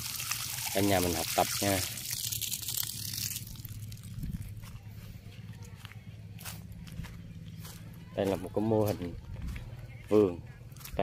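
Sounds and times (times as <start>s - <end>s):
irrigation water hissing: 0.0s - 4.5s
low steady hum: 1.8s - 11.0s.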